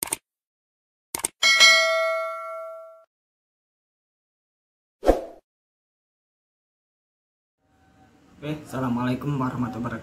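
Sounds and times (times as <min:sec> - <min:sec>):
bright bell ding: 0:01.4 - 0:03.1.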